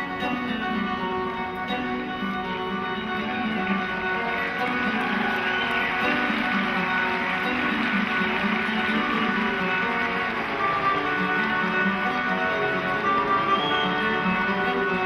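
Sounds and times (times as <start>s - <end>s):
flamenco guitar music: 0.0s - 15.0s.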